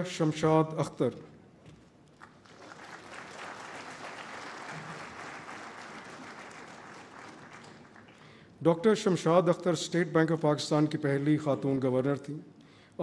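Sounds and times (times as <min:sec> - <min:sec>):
audience applauding: 0:02.2 - 0:08.3.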